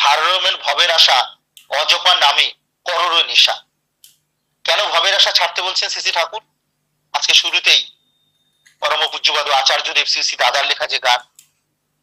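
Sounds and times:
man speaking: 0.0 - 3.7, 4.6 - 6.5, 7.1 - 8.0, 8.8 - 11.4.

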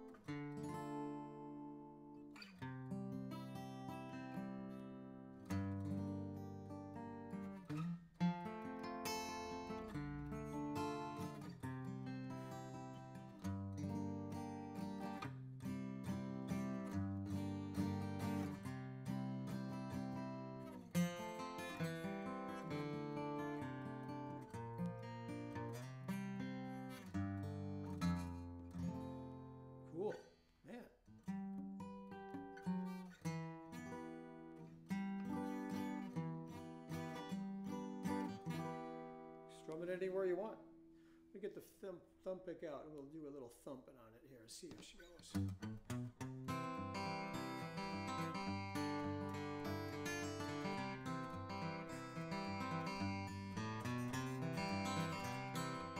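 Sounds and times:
acoustic guitar fingerstyle: 0.0 - 42.4, 44.6 - 55.9.

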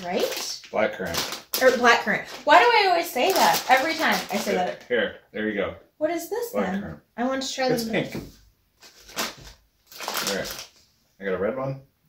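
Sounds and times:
plastic sweet bag crinkling: 0.0 - 4.8, 8.8 - 10.8.

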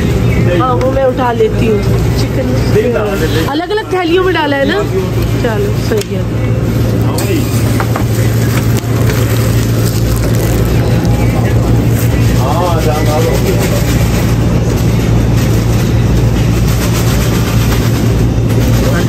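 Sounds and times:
steady low machine hum: 0.0 - 19.0.

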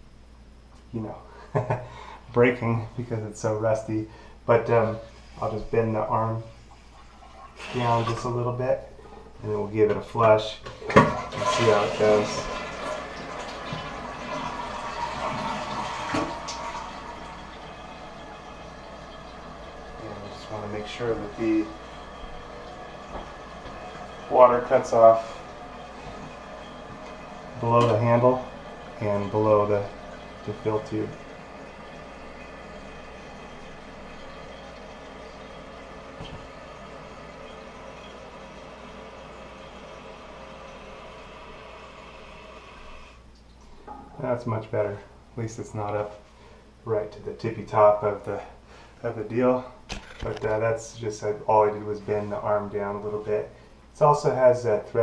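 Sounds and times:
fill valve running: 1.3 - 55.0
toilet flushing: 2.8 - 55.0.

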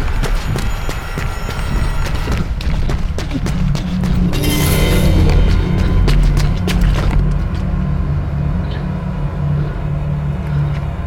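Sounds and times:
loud low pulsing rumble: 3.7 - 11.0.

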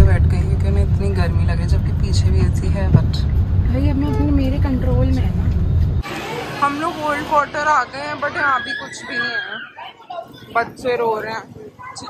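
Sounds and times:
car engine and road noise: 0.0 - 8.4.

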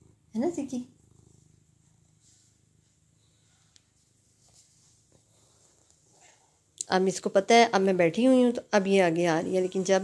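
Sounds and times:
cat purring: 0.0 - 6.8.

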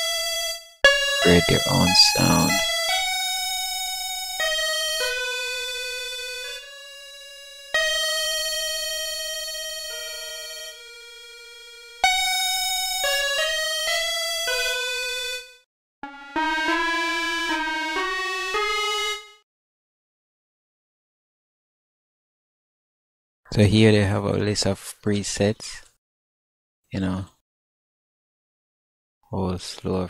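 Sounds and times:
electric piano notes: 1.2 - 2.6.

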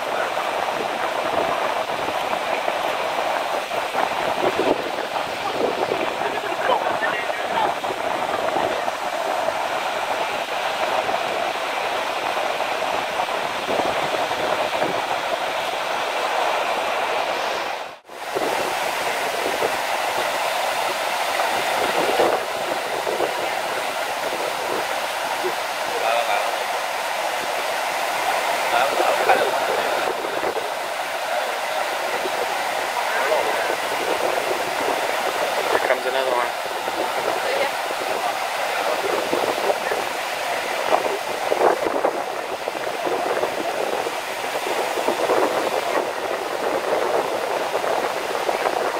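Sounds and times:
waves washing over rocks and sand: 0.0 - 48.9.

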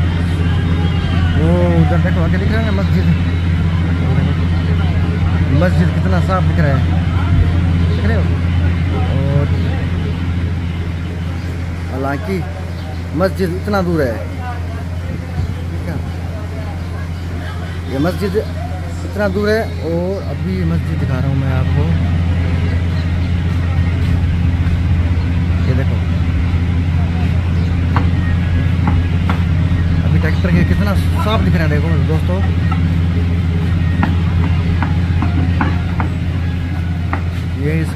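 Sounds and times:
engine idling: 0.0 - 37.9
faint voices: 0.0 - 37.9.

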